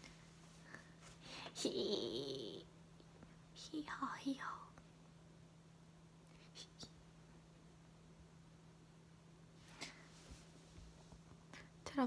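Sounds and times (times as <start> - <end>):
faint low hum: 0.0 - 12.0
woman whispering: 3.6 - 4.8, 6.4 - 7.0.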